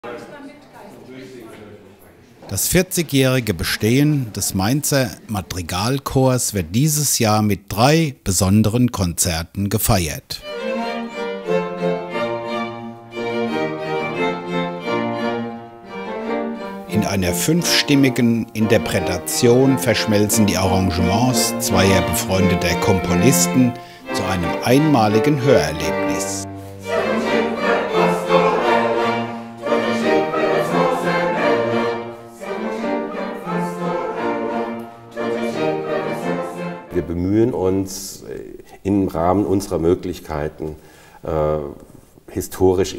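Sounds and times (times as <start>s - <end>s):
string ensemble playing slow chords: 10.4s - 37.7s
mixed choir singing: 18.6s - 36.9s.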